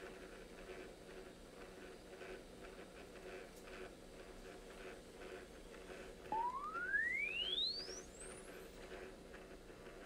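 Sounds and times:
rising electronic tone: 6.3s - 7.9s.

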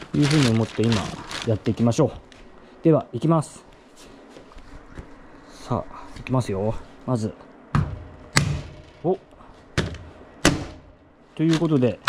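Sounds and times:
hammer striking plastic: 7.8s - 9.0s, 9.8s - 10.9s.

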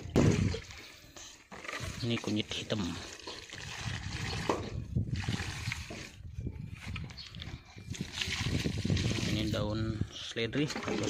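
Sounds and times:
liquid sloshing in a bucket: 0.0s - 11.0s.

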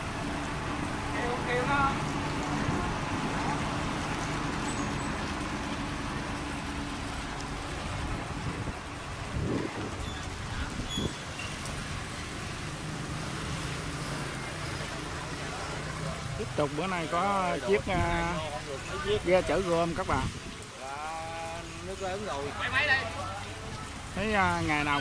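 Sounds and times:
boat engine running: 0.0s - 20.4s
water rushing: 0.0s - 25.0s.

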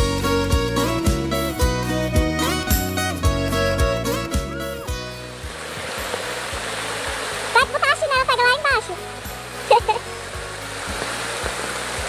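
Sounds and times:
background music with bass: 0.0s - 12.0s
floodwater rushing: 2.4s - 12.0s.

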